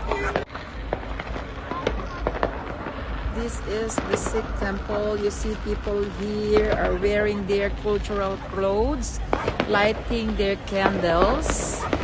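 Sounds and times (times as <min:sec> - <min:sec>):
crowd chatter: 0:00.0 - 0:12.0
firecrackers popping: 0:00.0 - 0:12.0.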